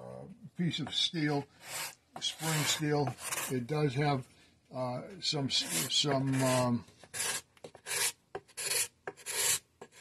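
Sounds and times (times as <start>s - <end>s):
cabinet scraper rasping on wood: 1.6s - 3.5s, 5.6s - 10.0s.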